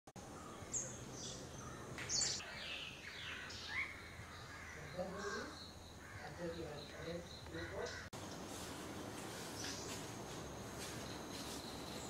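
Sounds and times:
wild birds chirping: 0:00.2 - 0:12.0.

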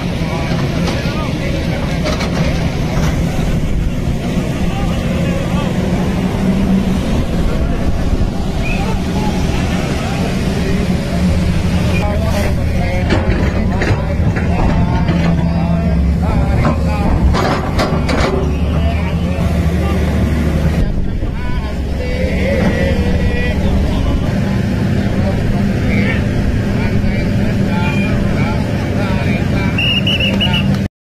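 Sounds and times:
excavator diesel engine running: 0:00.0 - 0:30.9
indistinct voices: 0:00.0 - 0:30.9.

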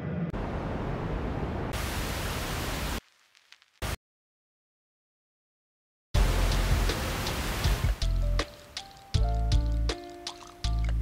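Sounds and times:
vinyl crackle and hiss: 0:01.8 - 0:04.0, 0:06.2 - 0:10.7.

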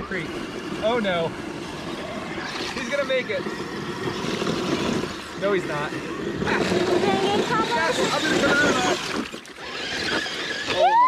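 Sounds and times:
excited voices: 0:05.4 - 0:09.8, 0:10.4 - 0:11.0.

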